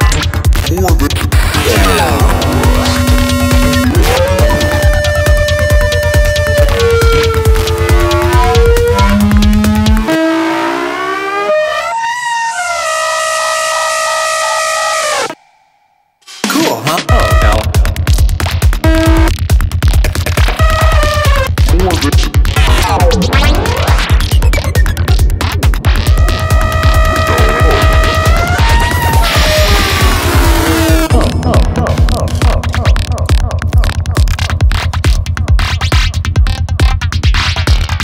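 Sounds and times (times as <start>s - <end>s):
psychedelic trance music: 0.0s - 15.7s, 16.6s - 38.0s.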